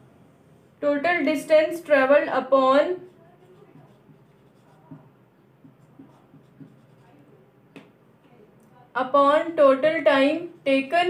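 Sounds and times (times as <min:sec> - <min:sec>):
marker writing on whiteboard: 0:01.1 - 0:07.9, 0:09.6 - 0:11.0.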